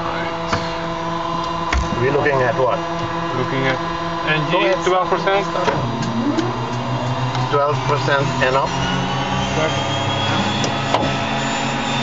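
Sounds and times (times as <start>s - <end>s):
turboprop engine starting whine: 0.0s - 12.0s.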